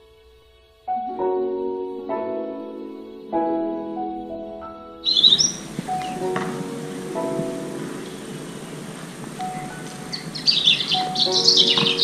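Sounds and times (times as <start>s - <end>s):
slow keyboard music: 0.0s - 12.0s
songbirds chirping: 0.0s - 12.0s.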